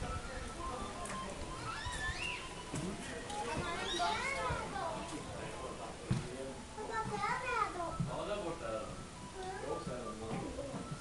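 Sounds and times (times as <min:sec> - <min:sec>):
children calling and chattering: 0:00.0 - 0:06.0, 0:06.6 - 0:08.2, 0:09.1 - 0:10.2.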